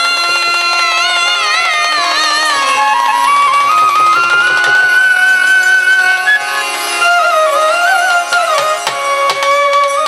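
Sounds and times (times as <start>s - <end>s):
soft percussion: 0.0s - 10.0s
instrumental drone: 0.3s - 8.2s.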